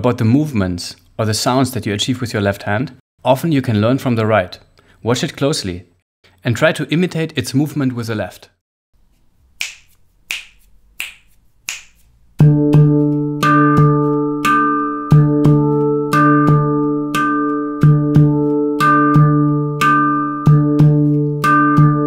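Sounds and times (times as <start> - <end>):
finger snaps: 9.6 - 12.1
handpan rhythm: 12.4 - 22.0.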